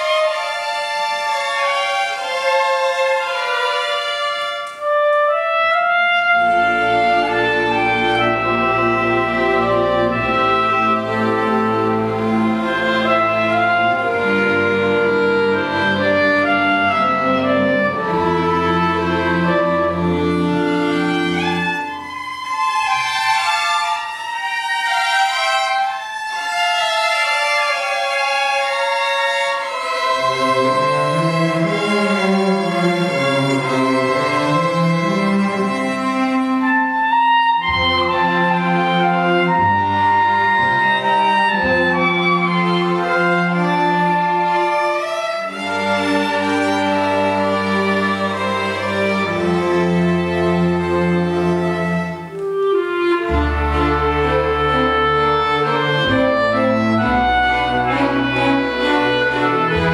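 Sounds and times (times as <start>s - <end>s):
high strings playing slow piece: 6.4s - 36.6s, 37.6s - 59.9s
low strings holding long notes: 37.6s - 59.9s.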